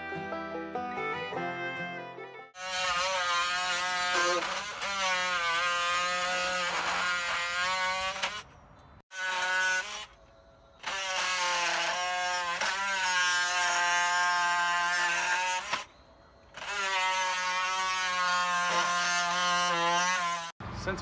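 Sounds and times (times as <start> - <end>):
jigsaw cutting wood: 2.5 - 10.2, 10.8 - 15.9, 16.5 - 20.6.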